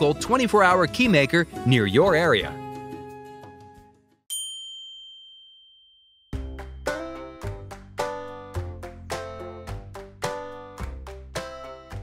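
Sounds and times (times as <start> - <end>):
background music: 0.0 - 4.2, 6.4 - 12.0
bright chime ding: 4.3 - 6.4.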